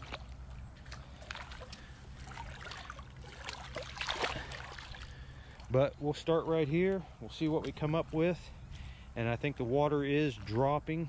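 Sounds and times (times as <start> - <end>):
hand splashing through water: 0.0 - 5.3
water trickling: 0.0 - 5.8
water sloshing around boots: 0.0 - 7.9.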